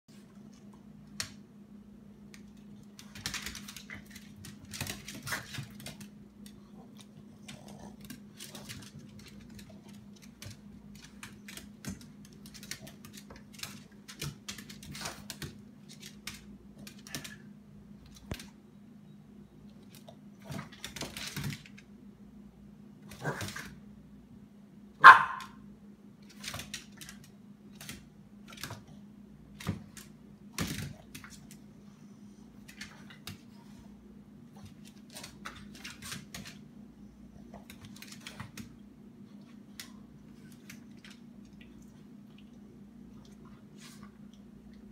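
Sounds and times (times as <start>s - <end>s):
dog claws clicking on wood floor: 2.3s - 17.4s
dogs scuffling and clicking: 2.3s - 18.6s, 19.7s - 21.9s, 26.2s - 28.9s, 29.5s - 31.7s, 32.5s - 33.9s, 34.6s - 36.7s, 37.4s - 42.6s
dog barking sharply: 25.0s - 25.6s.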